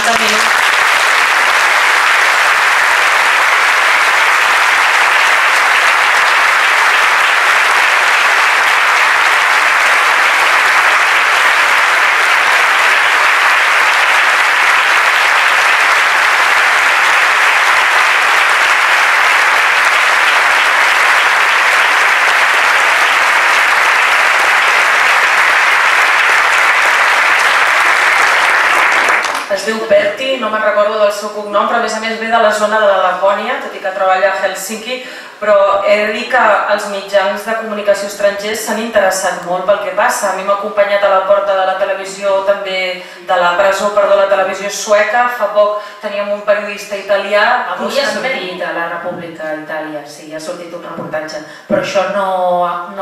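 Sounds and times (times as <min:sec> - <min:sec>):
audience applauding: 0:00.0 - 0:29.6.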